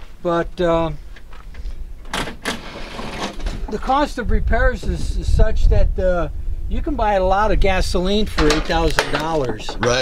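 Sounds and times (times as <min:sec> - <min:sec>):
wind rumbling on microphone: 0:01.0 - 0:10.0
hood latch rattling: 0:02.0 - 0:03.8, 0:08.3 - 0:10.0.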